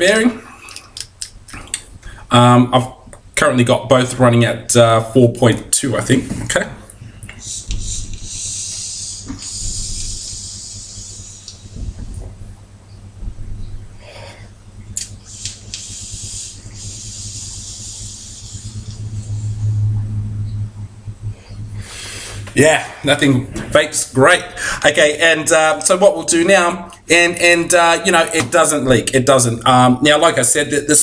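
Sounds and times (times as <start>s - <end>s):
e-cigarette draw hiss: 7.4s - 12.0s, 15.0s - 19.5s.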